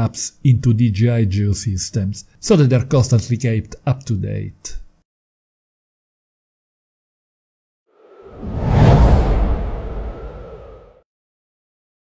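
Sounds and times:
whoosh sound effect: 0:08.0 - 0:11.0
deep rumble: 0:08.1 - 0:11.0.

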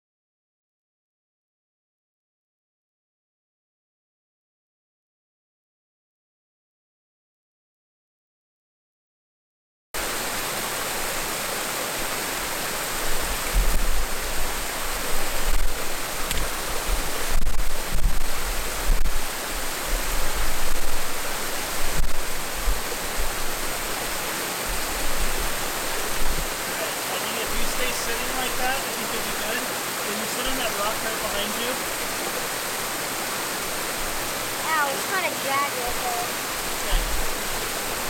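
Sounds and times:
waterfall rushing: 0:10.0 - 0:38.0.

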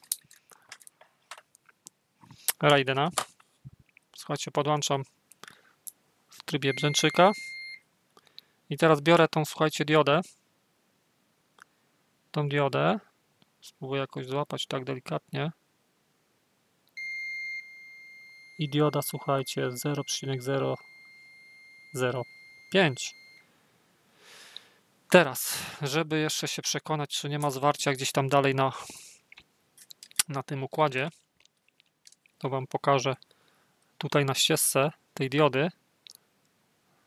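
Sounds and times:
faint small clicks and ticks: 0:00.0 - 0:04.2, 0:29.3 - 0:30.4, 0:31.1 - 0:32.5
multimeter continuity beep: 0:06.6 - 0:07.8, 0:17.0 - 0:23.5.

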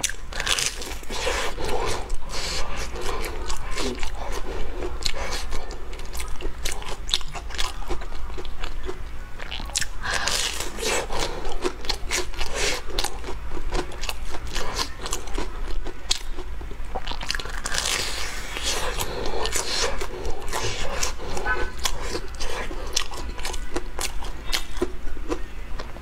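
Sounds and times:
bite into crisp crust: 0:00.0 - 0:25.4
crunching and chewing fried snack: 0:00.0 - 0:26.0.

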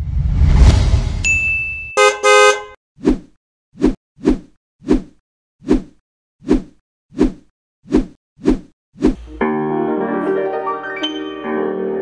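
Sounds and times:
loud whoosh: 0:00.0 - 0:01.3
high steady ding: 0:01.2 - 0:02.1
short horn-like honks: 0:02.0 - 0:02.8.

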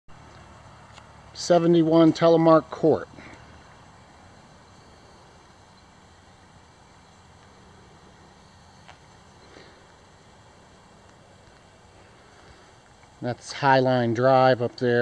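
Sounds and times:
low hum and hiss: 0:00.1 - 0:15.0.

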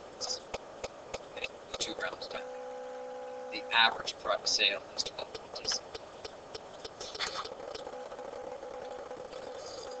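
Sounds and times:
low steady machine hum: 0:00.0 - 0:10.0.

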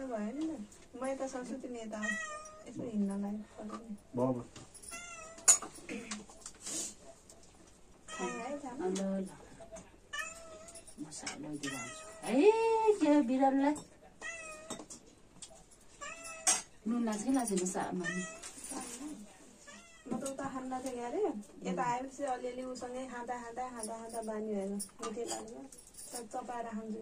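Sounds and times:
cat meowing: 0:02.0 - 0:02.7, 0:04.9 - 0:05.5, 0:08.1 - 0:08.6, 0:10.1 - 0:10.8, 0:11.6 - 0:12.3, 0:14.2 - 0:14.8, 0:16.0 - 0:16.6, 0:18.0 - 0:18.6, 0:19.6 - 0:20.1.

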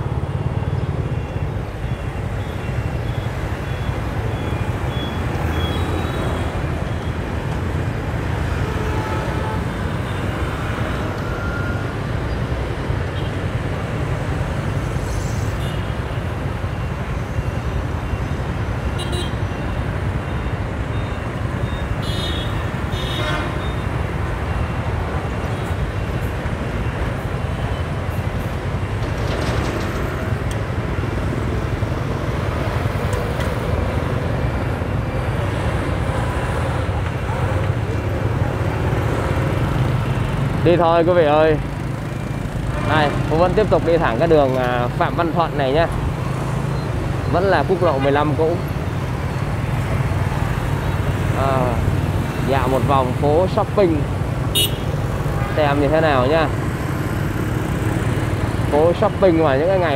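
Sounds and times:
low rumble of traffic: 0:00.0 - 0:59.9
vehicle horn toots: 0:22.0 - 0:23.8, 0:54.5 - 0:55.7.

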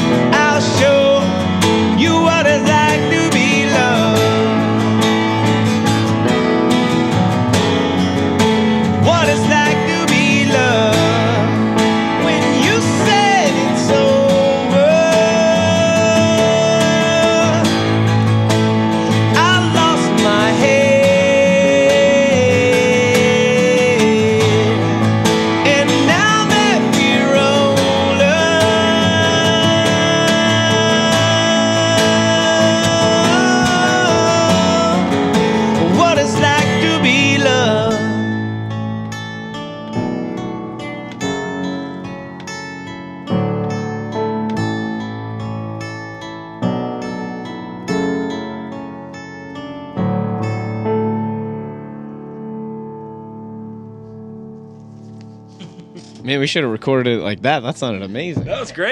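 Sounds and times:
person singing: 0:00.0 - 0:06.0, 0:08.9 - 0:38.7
strummed acoustic guitar: 0:00.0 - 0:58.9.

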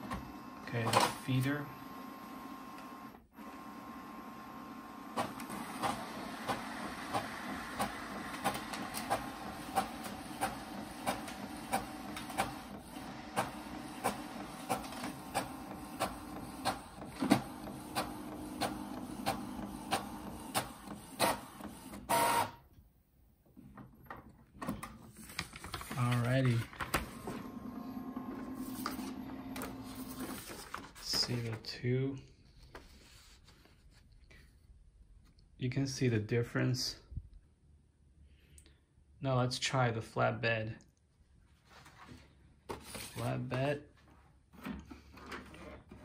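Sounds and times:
printer mechanism humming: 0:00.0 - 0:22.7, 0:23.5 - 0:31.6.

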